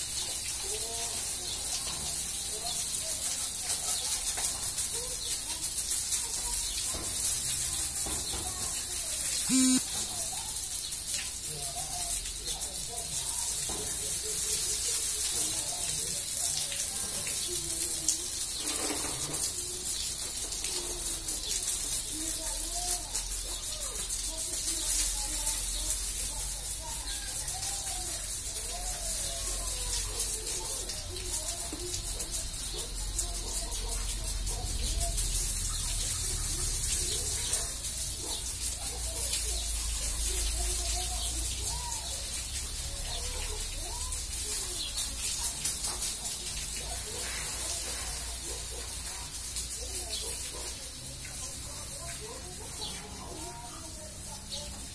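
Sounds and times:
hose spraying water on tiles: 0:00.0 - 0:54.9.

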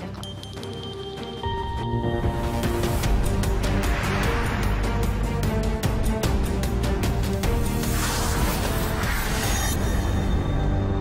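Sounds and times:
news theme music: 0:00.0 - 0:08.0.

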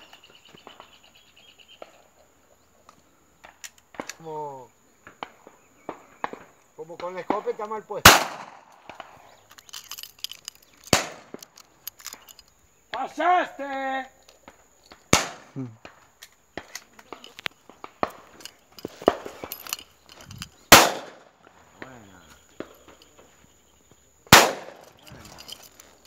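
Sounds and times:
distant gunshot pops: 0:05.0 - 0:09.2, 0:15.1 - 0:16.7, 0:20.7 - 0:21.3, 0:24.3 - 0:24.8
loud shotgun shots: 0:08.0 - 0:09.2, 0:10.9 - 0:11.4, 0:15.1 - 0:15.6, 0:20.7 - 0:21.3, 0:24.3 - 0:25.0.

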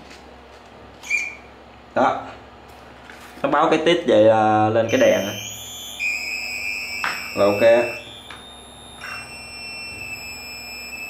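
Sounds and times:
electronic power-on beep: 0:04.9 - 0:11.0.

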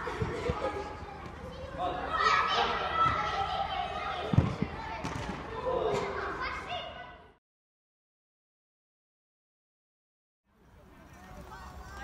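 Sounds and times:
children's voices echoing: 0:00.0 - 0:07.3.

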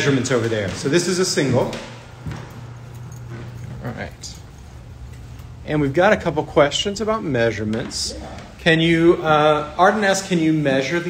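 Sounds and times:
steady low hum: 0:00.0 - 0:11.0
footsteps on carpet: 0:00.1 - 0:05.6
key ring jingling: 0:02.5 - 0:05.9.

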